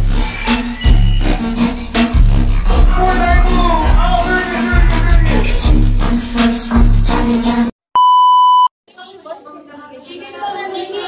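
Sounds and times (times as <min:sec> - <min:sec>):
upbeat dance music: 0:00.0 - 0:07.7
electronic beep: 0:08.0 - 0:08.7.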